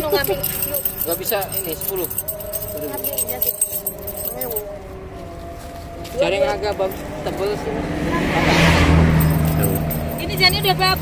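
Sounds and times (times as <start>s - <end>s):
faint voices: 0.0s - 8.7s.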